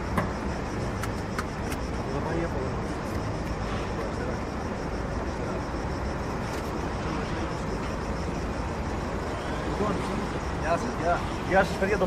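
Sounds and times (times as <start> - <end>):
vehicle and street noise: 0.0 - 12.0.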